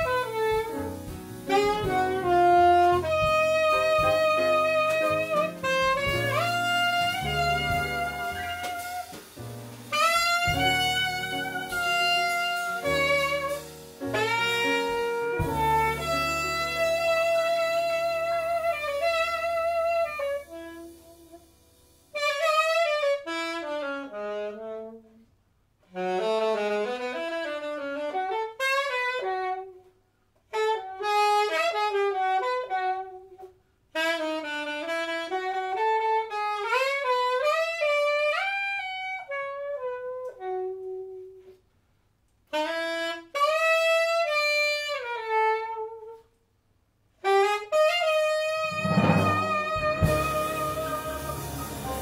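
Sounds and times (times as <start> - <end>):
alto saxophone playing jazz: 0.0 - 41.6, 42.5 - 46.4, 47.1 - 52.0.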